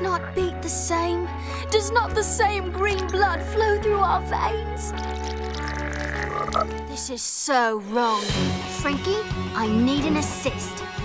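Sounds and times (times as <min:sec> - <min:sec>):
soft background music: 0:00.0 - 0:11.0
cartoon frog croaking: 0:04.9 - 0:06.9.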